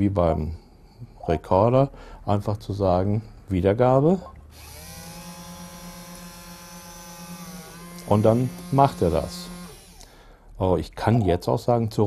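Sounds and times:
robot arm gear motors whirring: 0:04.5 - 0:10.0.

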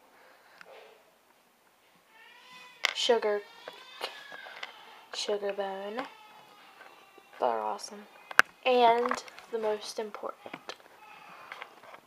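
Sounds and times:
plastic toy tapping on wood: 0:08.3 - 0:09.3.

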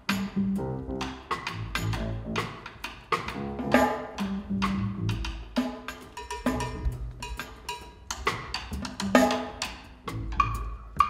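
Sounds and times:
double bass notes: 0:00.1 - 0:02.6, 0:03.2 - 0:05.5, 0:06.5 - 0:07.4
piano notes: 0:00.2 - 0:02.5.

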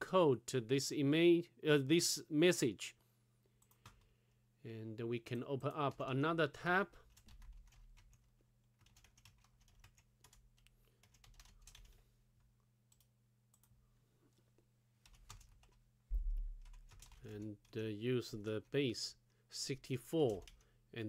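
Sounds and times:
low electrical hum: 0:00.0 - 0:21.0
low thump: 0:16.1 - 0:16.6.

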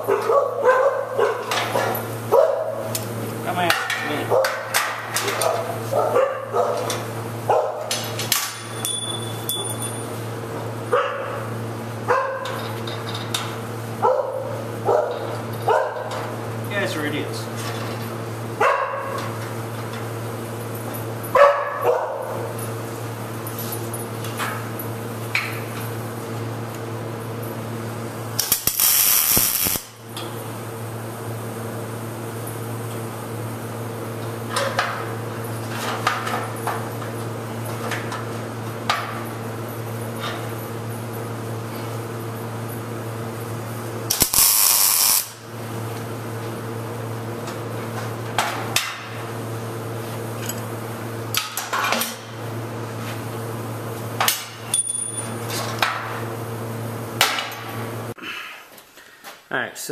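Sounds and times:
dog barking and yipping: 0:00.0 - 0:02.8, 0:05.4 - 0:06.9, 0:07.5 - 0:07.9, 0:10.9 - 0:11.4, 0:12.1 - 0:12.6, 0:14.0 - 0:16.1, 0:18.6 - 0:19.2, 0:21.4 - 0:22.4
welding arc crackle: 0:28.4 - 0:30.1, 0:44.0 - 0:45.5.

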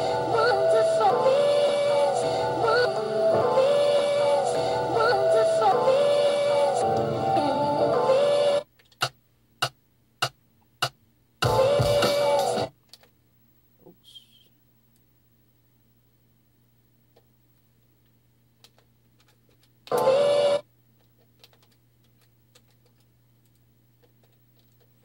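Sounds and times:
sampled singing loop: 0:00.0 - 0:08.6, 0:11.4 - 0:12.7
chopped sample stabs: 0:09.0 - 0:12.7.

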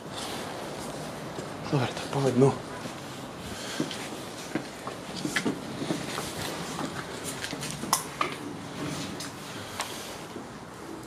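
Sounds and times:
footsteps crunching on rubble: 0:03.6 - 0:07.9.

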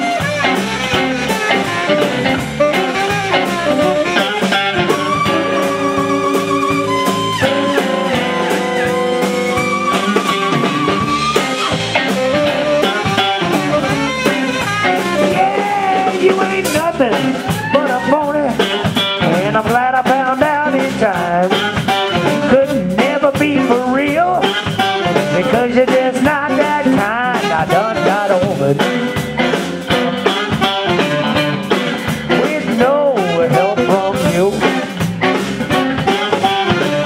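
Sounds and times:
wavering saxophone note: 0:00.0 - 0:16.1, 0:35.2 - 0:37.0
live blues band playing: 0:00.0 - 0:37.0
man singing lead: 0:13.8 - 0:29.2, 0:32.3 - 0:37.0.

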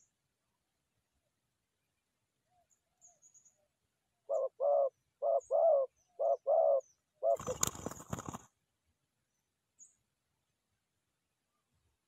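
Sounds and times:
dove cooing: 0:04.2 - 0:08.4
flurry of wingbeats: 0:07.4 - 0:08.5.

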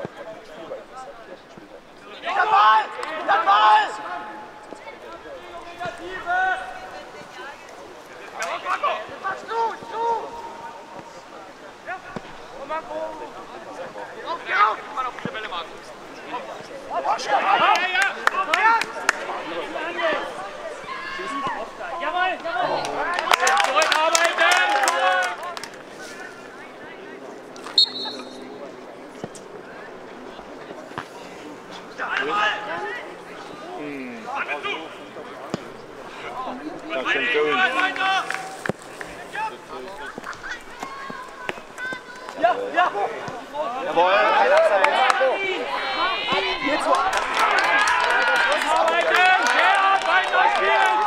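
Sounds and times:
voices shouting loudly: 0:02.0 - 0:26.5, 0:31.9 - 0:51.0
voices shouting calls: 0:27.7 - 0:28.8.

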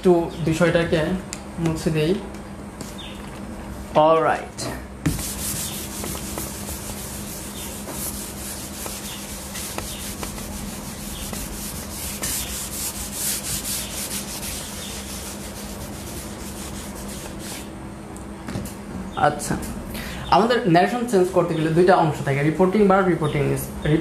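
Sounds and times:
pen scratching on paper: 0:05.2 - 0:17.3.

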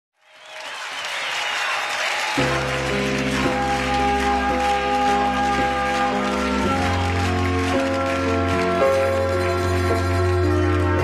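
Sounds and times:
studio audience applauding: 0:00.2 - 0:11.0.

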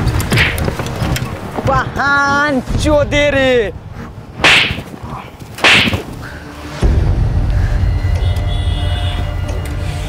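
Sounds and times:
whip cracks: 0:00.3 - 0:00.7, 0:04.4 - 0:05.0, 0:05.6 - 0:06.1.

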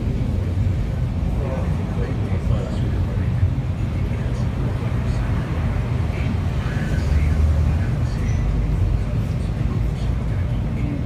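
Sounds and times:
bus engine and road rumble: 0:00.0 - 0:11.0
faint passenger voices: 0:00.0 - 0:11.0.

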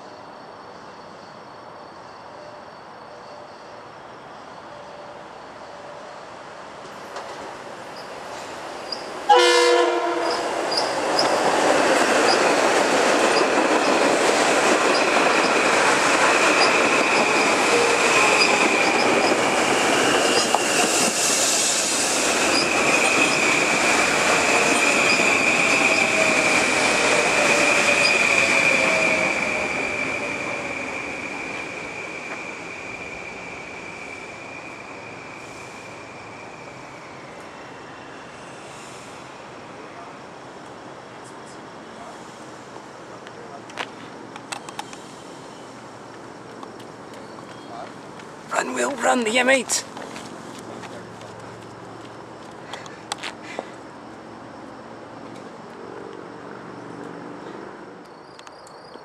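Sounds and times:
train passing on rails: 0:00.0 - 0:59.0
train horn blast: 0:09.3 - 0:10.5.

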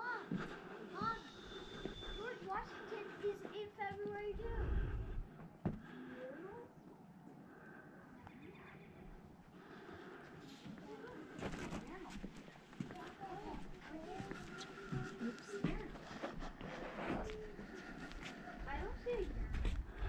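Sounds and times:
footsteps on boardwalk decking: 0:00.0 - 0:04.5, 0:05.2 - 0:06.0, 0:09.6 - 0:20.0.

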